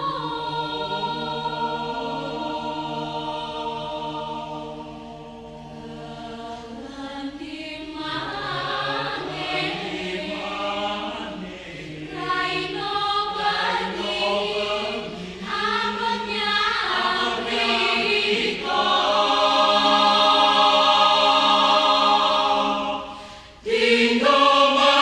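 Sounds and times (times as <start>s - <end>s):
mixed choir singing a cappella: 0.0s - 25.0s.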